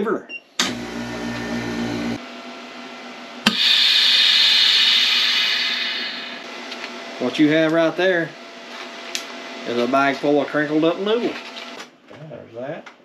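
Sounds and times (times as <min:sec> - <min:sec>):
vacuum pump humming: 0:00.6 - 0:02.2, 0:03.4 - 0:09.8
air hissing into chamber: 0:03.4 - 0:06.5.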